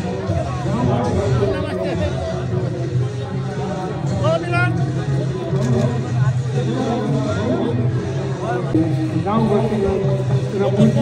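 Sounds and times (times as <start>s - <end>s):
people talking outdoors: 0.0s - 11.0s.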